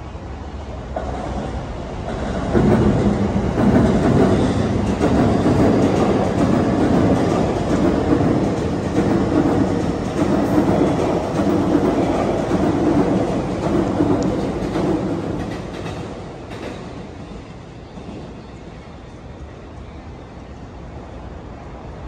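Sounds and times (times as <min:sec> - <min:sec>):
train rumbling past: 0:00.0 - 0:22.0
wheels clattering on rails: 0:00.8 - 0:19.5.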